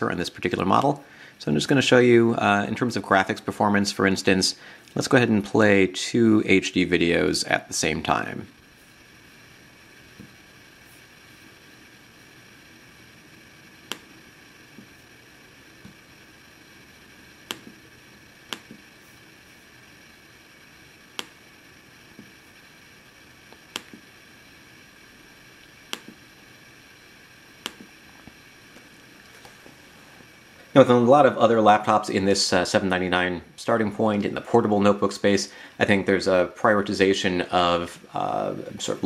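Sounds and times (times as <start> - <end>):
faint steady hiss: 0.0 - 39.0.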